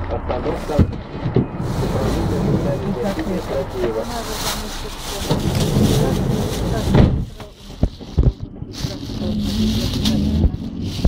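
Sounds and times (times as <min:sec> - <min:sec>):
bus engine rumble: 0:00.0 - 0:11.0
road noise: 0:00.0 - 0:11.0.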